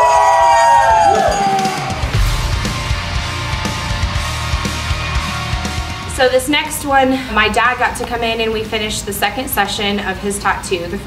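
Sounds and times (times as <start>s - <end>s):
people whooping: 0.0s - 2.2s.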